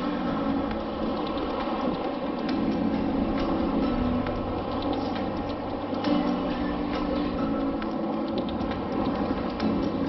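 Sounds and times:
wind: 0.0s - 10.0s.

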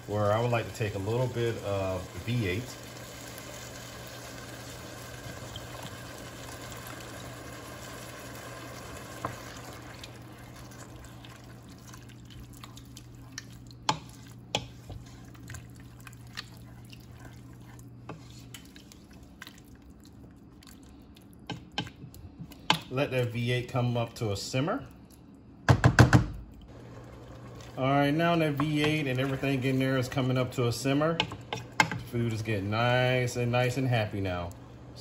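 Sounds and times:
vegetables sizzling: 0.0s - 19.4s, 26.7s - 33.8s
juice pouring into a pot: 0.0s - 21.4s, 26.7s - 31.1s
wooden spoon stirring: 5.2s - 20.7s, 26.8s - 33.5s.

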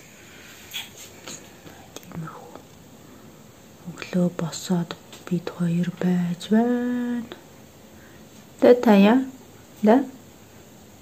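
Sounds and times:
person whispering: 1.8s - 2.7s.

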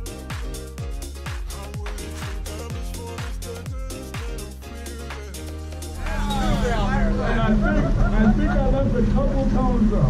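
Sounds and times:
indistinct voices talking: 5.8s - 9.0s.

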